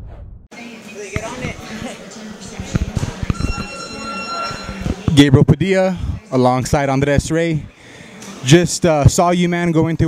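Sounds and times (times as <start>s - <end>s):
high buzzer tone: 3.3s - 5.1s.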